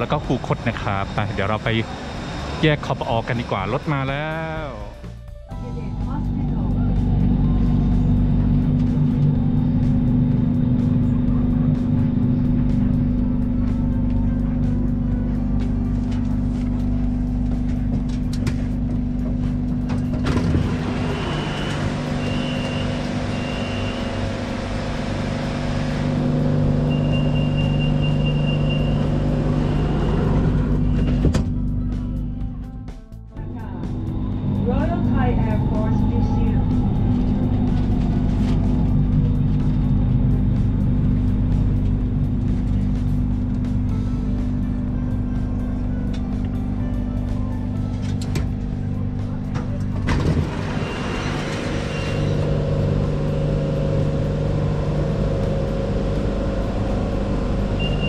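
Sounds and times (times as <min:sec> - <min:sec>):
electric train humming: 0:00.0 - 0:58.0
steady high tone: 0:20.7 - 0:31.8, 0:33.4 - 0:42.1, 0:50.6 - 0:58.0
door warning beeps: 0:21.1 - 0:24.2, 0:26.8 - 0:29.2, 0:30.8 - 0:31.4, 0:57.8 - 0:58.0.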